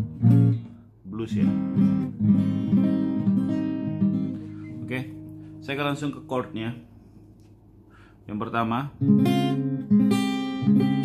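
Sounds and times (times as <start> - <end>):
acoustic guitar chords ringing: 0.0 - 6.9, 8.9 - 11.0.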